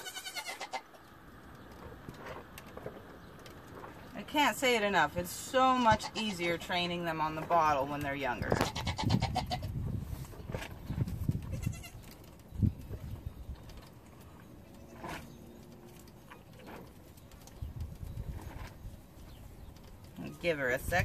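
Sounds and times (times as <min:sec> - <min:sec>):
goat kids bleating: 0:00.0 - 0:01.0, 0:08.5 - 0:09.7, 0:11.3 - 0:12.3.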